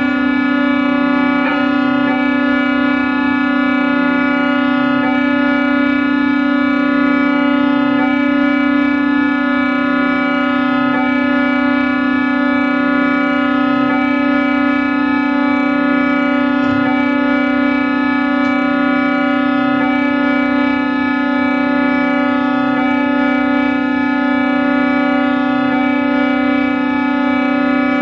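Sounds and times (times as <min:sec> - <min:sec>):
electronic drone: 0:00.0 - 0:28.0.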